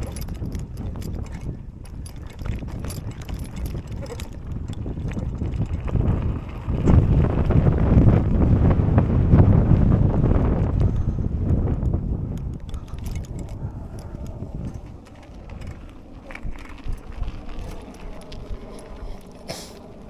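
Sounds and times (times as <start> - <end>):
bike rattling and clicking: 0.0 - 20.0
wind buffeting microphone: 0.0 - 20.0.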